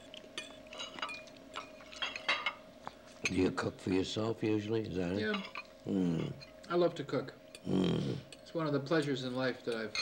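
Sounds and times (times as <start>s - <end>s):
cutlery clinking on plates: 0.4s - 2.6s, 8.3s - 10.0s.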